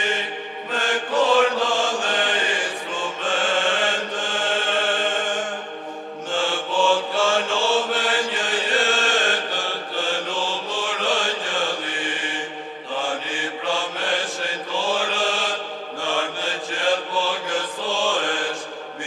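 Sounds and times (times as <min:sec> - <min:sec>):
liturgical chanting: 0:00.0 - 0:19.0.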